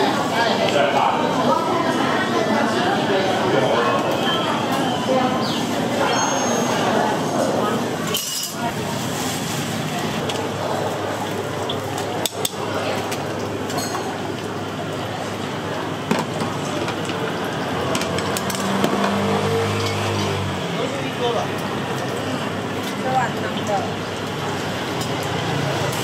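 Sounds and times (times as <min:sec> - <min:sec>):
background of voices: 0:00.0 - 0:09.1
metal utensils clinking bowls: 0:08.0 - 0:09.3, 0:11.7 - 0:14.2, 0:17.8 - 0:20.4.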